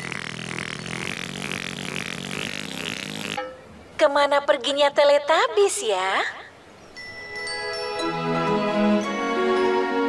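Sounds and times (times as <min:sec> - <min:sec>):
buzzy raspy trumpet sound: 0:00.0 - 0:03.5.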